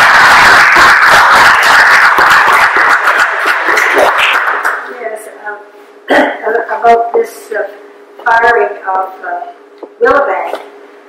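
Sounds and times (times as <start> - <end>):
audience applauding: 0.0 - 4.9.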